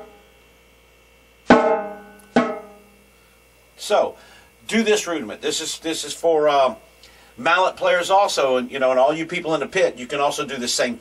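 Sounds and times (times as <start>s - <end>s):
snare drum strike: 1.5s - 2.8s.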